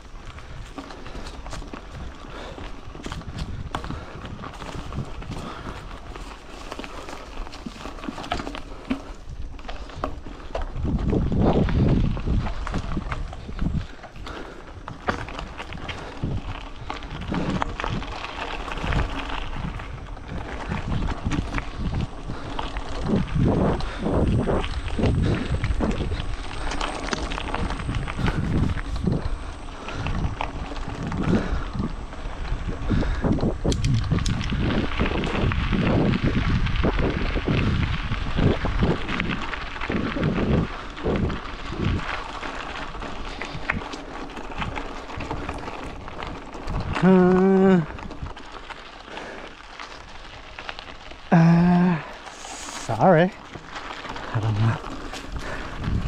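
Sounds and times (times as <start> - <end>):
footsteps on gravel: 0.0 - 32.8, 38.2 - 56.0
wind buffeting microphone: 0.0 - 56.0.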